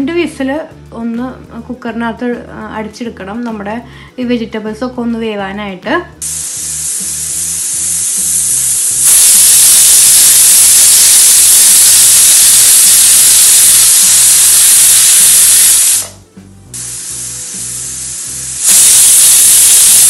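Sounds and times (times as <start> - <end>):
pressure cooker whistling steam hiss: 6.2 - 16.2, 16.8 - 20.0.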